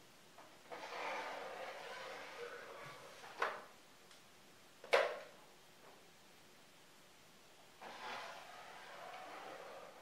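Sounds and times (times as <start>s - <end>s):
marker scraping on whiteboard: 0.7s - 3.5s, 7.8s - 10.0s.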